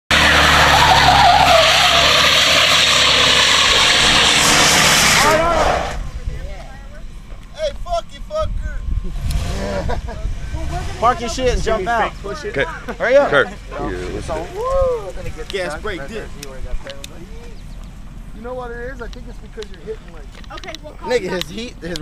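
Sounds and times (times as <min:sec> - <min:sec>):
engine revving hard: 0:00.1 - 0:06.1, 0:09.0 - 0:12.0
tires spinning and squealing: 0:00.1 - 0:06.3
voices: 0:05.0 - 0:22.0.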